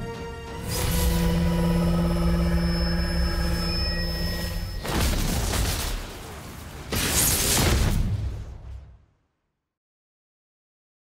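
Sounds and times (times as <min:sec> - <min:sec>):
sustained hum with overtones: 0:00.6 - 0:05.0.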